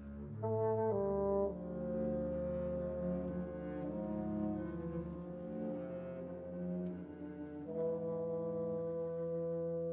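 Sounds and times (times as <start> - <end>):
bassoon: 0.0 - 9.9.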